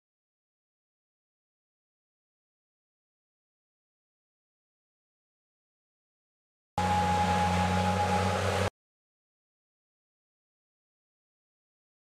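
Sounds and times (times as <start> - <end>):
diesel engine running: 6.8 - 8.7
high whine: 6.8 - 8.7.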